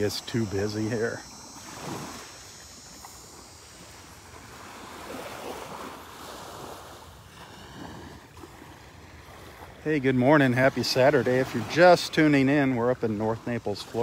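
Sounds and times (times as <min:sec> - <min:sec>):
wind on microphone: 0:00.0 - 0:09.7
small waves lapping on beach: 0:00.0 - 0:14.0.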